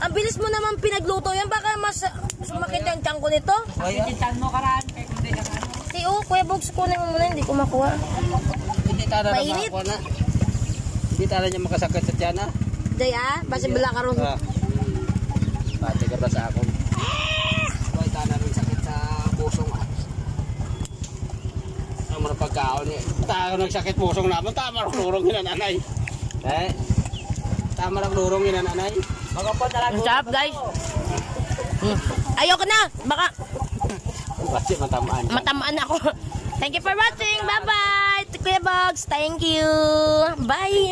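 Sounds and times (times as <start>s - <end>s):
chickens clucking: 0.0s - 40.9s
low pulsing hum: 0.0s - 40.9s
small engine running: 0.0s - 40.9s
voices talking: 0.0s - 40.9s.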